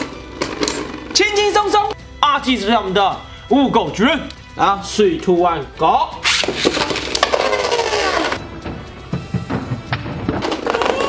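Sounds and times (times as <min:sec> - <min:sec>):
spinning tops whirring: 0:06.2 - 0:08.4.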